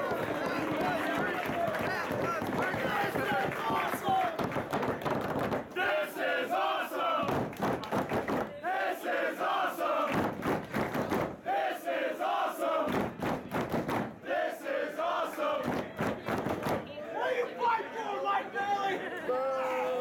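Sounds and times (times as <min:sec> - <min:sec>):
crowd chanting in unison: 0:00.0 - 0:04.4, 0:05.6 - 0:07.6, 0:08.4 - 0:19.2
crowd noise: 0:00.0 - 0:20.0.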